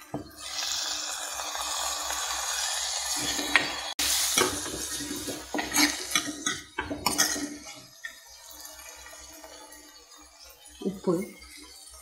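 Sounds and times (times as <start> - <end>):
tomatoes sizzling in hot oil: 0.0 - 12.0
steel ladle scraping pot: 3.1 - 8.2.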